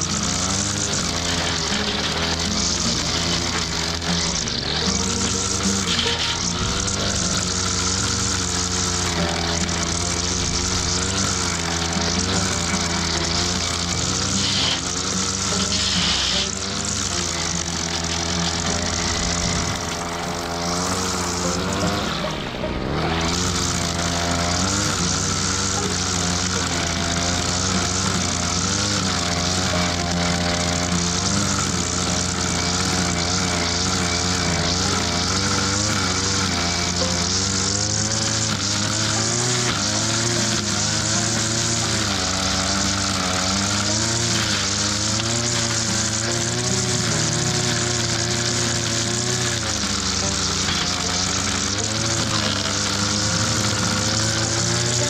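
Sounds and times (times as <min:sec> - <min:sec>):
brush cutter engine running: 0:00.0 - 0:55.0.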